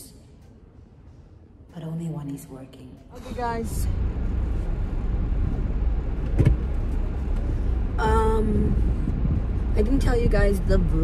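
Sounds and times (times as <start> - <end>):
car engine low rumble: 0.0 - 11.0.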